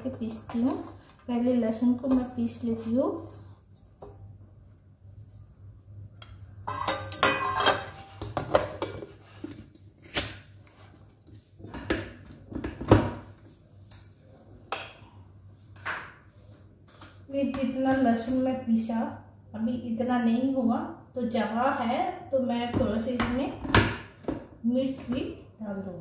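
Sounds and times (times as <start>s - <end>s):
metal pots clattering: 6.6s - 9.2s.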